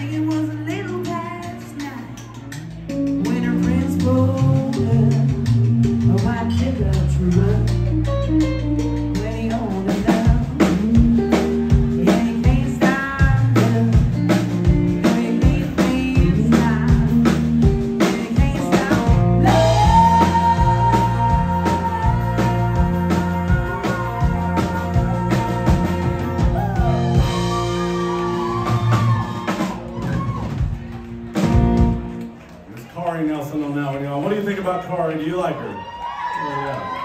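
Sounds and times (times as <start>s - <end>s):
woman singing: 0.0s - 2.2s, 3.2s - 27.0s
drum kit beat: 0.0s - 32.6s
live country band playing: 0.0s - 37.0s.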